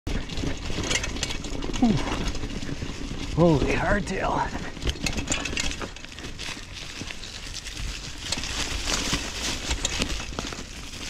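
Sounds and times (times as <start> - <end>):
bike chain slap and frame rattles: 0.1 - 3.3, 4.6 - 11.0
tyres rumbling on rough trail: 0.1 - 11.0.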